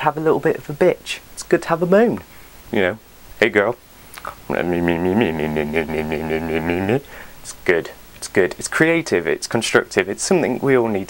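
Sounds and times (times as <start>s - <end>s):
man humming: 4.2s - 7.6s.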